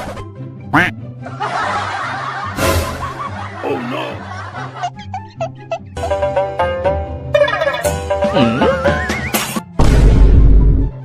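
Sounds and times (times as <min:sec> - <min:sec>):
background music with bass: 0:00.0 - 0:11.0
people laughing: 0:01.2 - 0:05.5.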